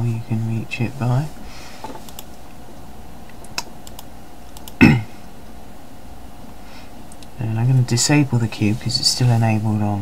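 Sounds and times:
steady background hum: 0:00.0 - 0:10.0
keyboard clicks: 0:03.4 - 0:04.8.

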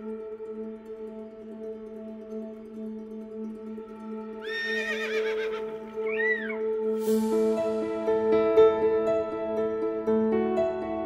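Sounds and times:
soft ambient music: 0:00.0 - 0:11.0
horse whinnying: 0:04.4 - 0:06.6.

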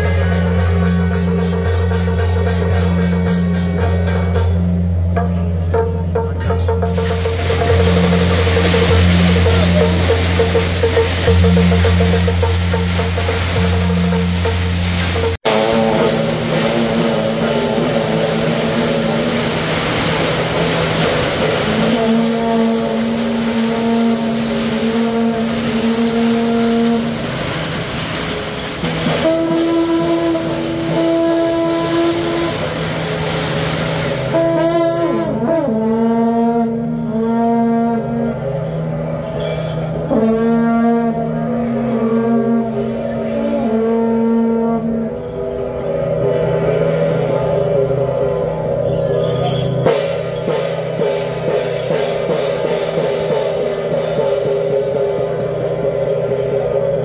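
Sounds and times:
brass horns blowing low notes: 0:06.8 - 0:57.0.

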